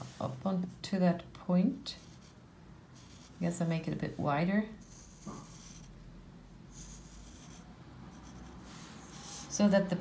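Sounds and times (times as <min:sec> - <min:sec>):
pencil scratching on card: 0:02.0 - 0:02.4, 0:03.0 - 0:03.4, 0:04.8 - 0:05.9, 0:06.7 - 0:09.5.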